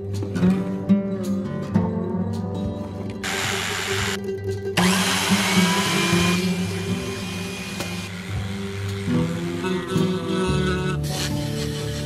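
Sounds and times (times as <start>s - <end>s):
background guitar music: 0.0s - 12.0s
power tool cutting wood: 3.2s - 4.2s, 4.8s - 11.9s.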